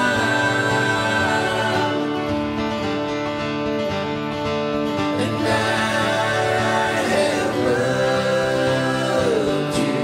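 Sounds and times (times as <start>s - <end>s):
electric bass: 0.0s - 10.0s
strummed acoustic guitars: 0.0s - 10.0s.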